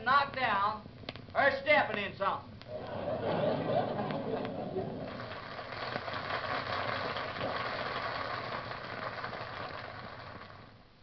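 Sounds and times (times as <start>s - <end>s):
audience applauding on old record: 2.8s - 10.9s.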